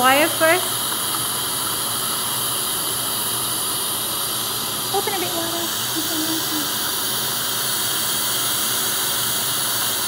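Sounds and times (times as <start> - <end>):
dental suction hissing: 0.0 - 10.0.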